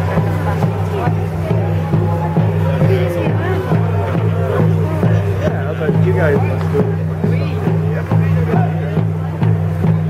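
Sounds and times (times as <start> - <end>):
music with steady drumbeat: 0.0 - 10.0
voices: 0.0 - 10.0.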